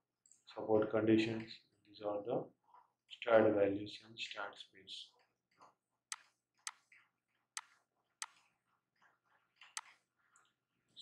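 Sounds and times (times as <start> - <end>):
computer mouse clicking: 5.6 - 8.5, 9.6 - 10.5.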